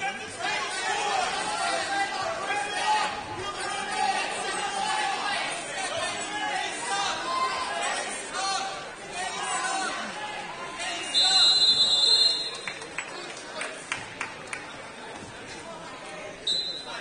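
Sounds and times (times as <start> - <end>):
spectators chattering: 0.0 - 17.0.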